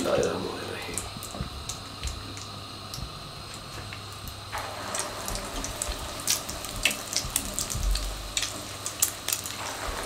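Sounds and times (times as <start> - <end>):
oil sizzling in a frying pan: 0.0 - 10.0
oil spitting crackles: 0.0 - 10.0.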